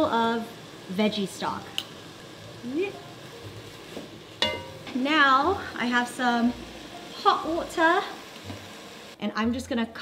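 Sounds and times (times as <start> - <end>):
food sizzling in a pot: 0.0 - 10.0.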